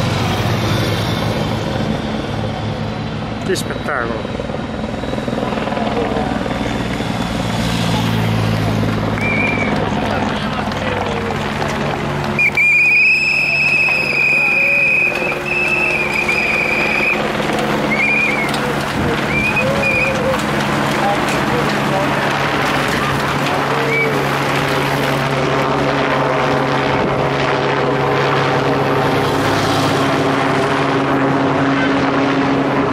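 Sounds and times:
engine drone of passing vehicles: 0:00.0 - 0:32.9
helicopter rotor chopping: 0:00.0 - 0:32.9
motorcycle passing: 0:06.0 - 0:12.5, 0:26.5 - 0:32.7.

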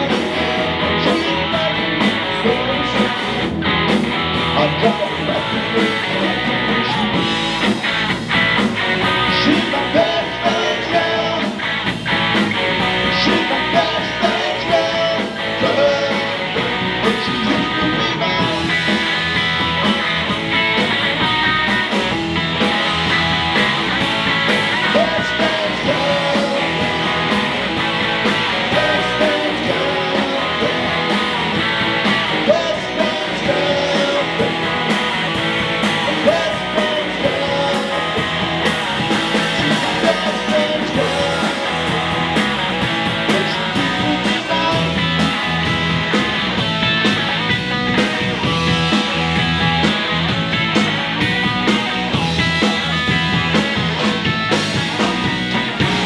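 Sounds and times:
bass guitar: 0:00.0 - 0:56.0
drums: 0:00.0 - 0:56.0
electric guitar: 0:00.0 - 0:56.0.

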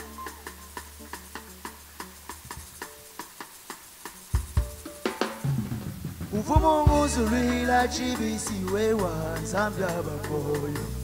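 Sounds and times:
hand shaker steady beat: 0:00.0 - 0:11.0.

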